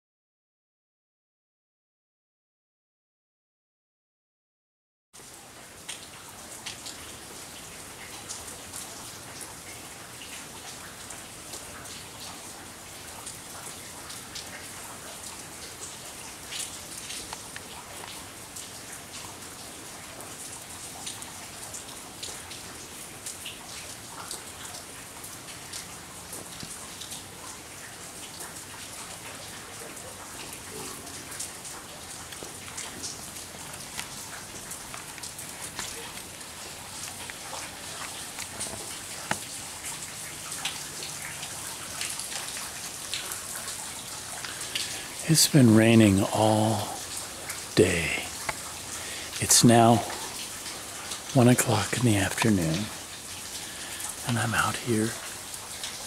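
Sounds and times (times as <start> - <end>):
drizzle falling on pool water: 5.2 - 56.0.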